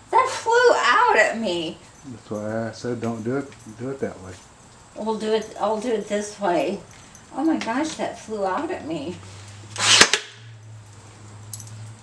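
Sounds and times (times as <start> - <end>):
nail gun shot: 9.8 - 10.4.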